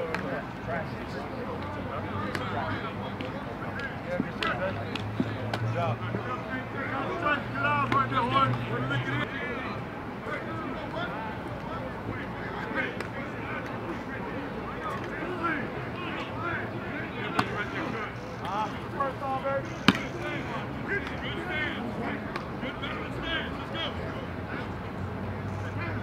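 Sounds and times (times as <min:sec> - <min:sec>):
people talking and calling out: 0:00.0 - 0:26.0.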